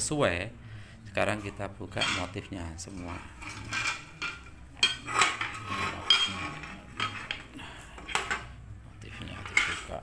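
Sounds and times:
metal molds clanking: 1.3 - 8.6, 9.3 - 10.0.

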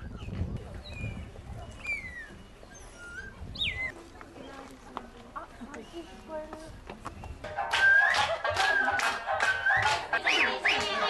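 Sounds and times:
birds whistling chirps: 0.0 - 4.0
low background murmur: 0.0 - 11.0.

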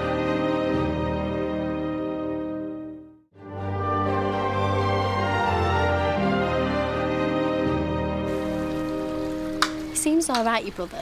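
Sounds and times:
television theme music: 0.0 - 10.6.

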